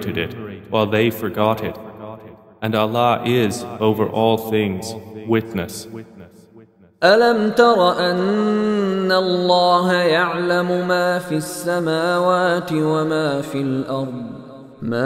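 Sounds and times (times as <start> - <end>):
man chanting melodic verse: 0.0 - 1.8, 2.6 - 6.0, 7.0 - 15.0.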